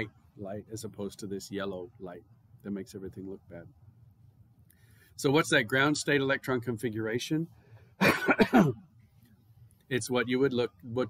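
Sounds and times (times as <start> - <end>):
man coughing: 8.0 - 8.8.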